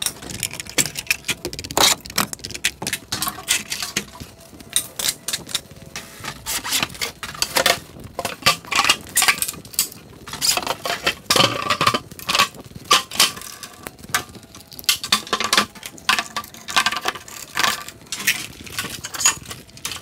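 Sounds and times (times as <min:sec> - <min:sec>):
plywood parts clattering and knocking: 0:00.0 - 0:04.2, 0:14.8 - 0:20.0.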